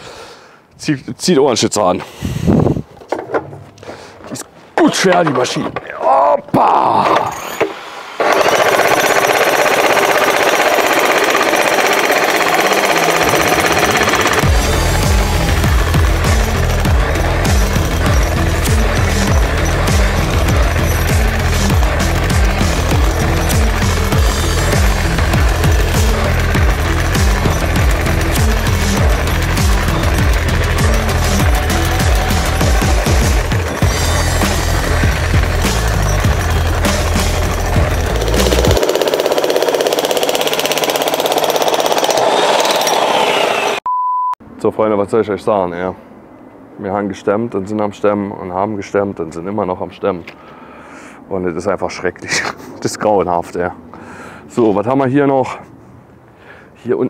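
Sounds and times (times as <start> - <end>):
demolition hammer chiselling concrete: 7.5 - 43.8
music with heavy bass beat: 14.4 - 38.8.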